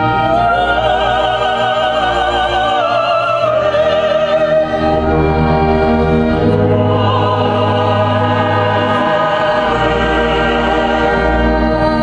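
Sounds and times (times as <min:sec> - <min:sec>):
mixed choir singing: 0:00.0 - 0:12.0
strings and brass orchestra: 0:00.0 - 0:12.0.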